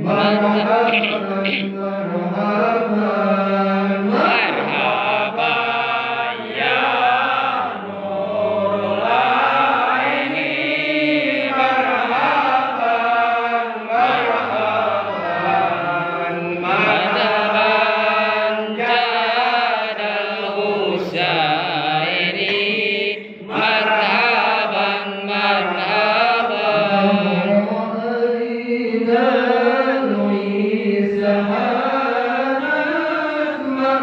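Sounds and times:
group chanting in unison: 0:00.0 - 0:34.0.

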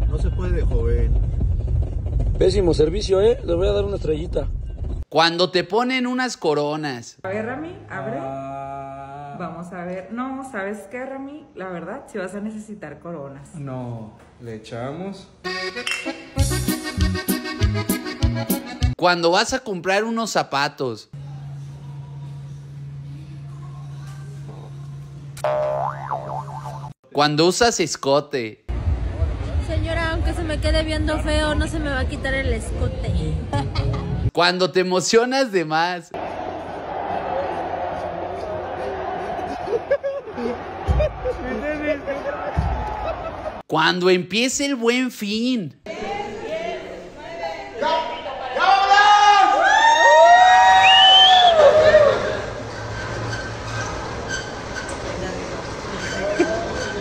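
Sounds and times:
cartoon boing spring effect: 0:25.4 - 0:27.0
metal shutter rumbling and rattling: 0:52.5 - 0:57.0.

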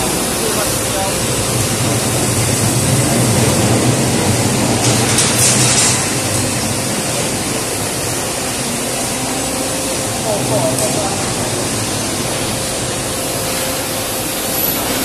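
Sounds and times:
laminating machine rumbling: 0:00.0 - 0:15.0.

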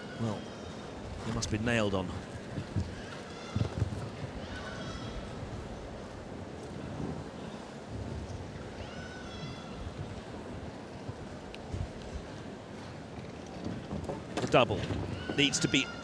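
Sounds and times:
hooves thudding on sand: 0:02.1 - 0:08.5, 0:09.8 - 0:15.5.

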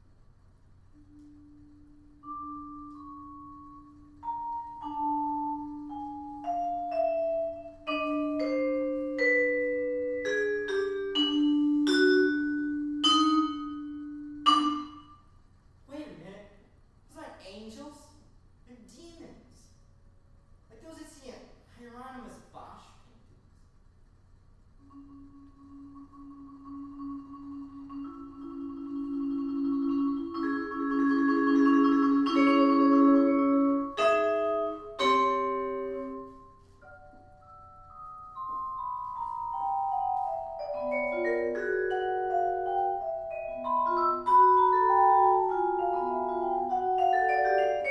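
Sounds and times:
vibraphone notes: 0:01.0 - 0:15.2, 0:24.8 - 0:47.9.

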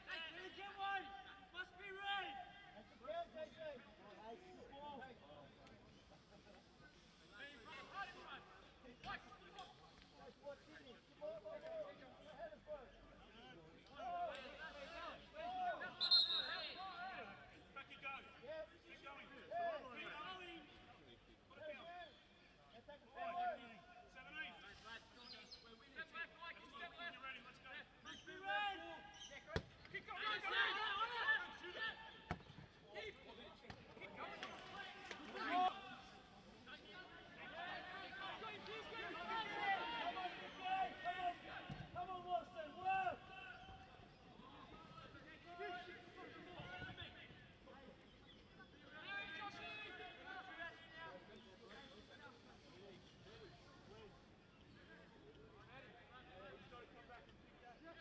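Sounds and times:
footballers shouting: 0:36.8 - 0:43.9.

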